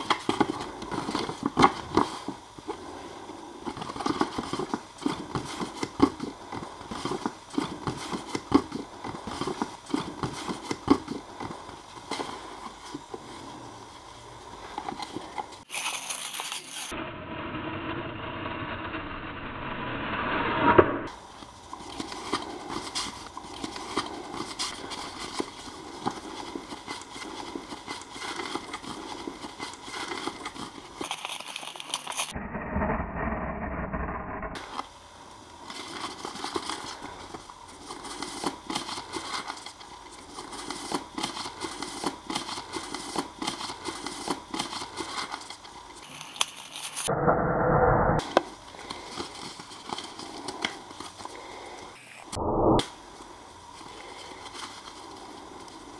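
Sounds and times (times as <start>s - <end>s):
paper crumpling and rustling: 15.1s - 16.9s, 21.9s - 32.3s, 37.8s - 47.1s.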